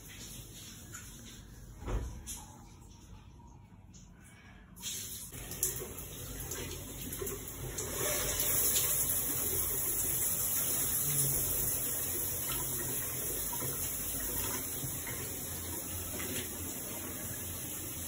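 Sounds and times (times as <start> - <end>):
water running from sink tap: 0.0 - 3.2, 4.8 - 18.0.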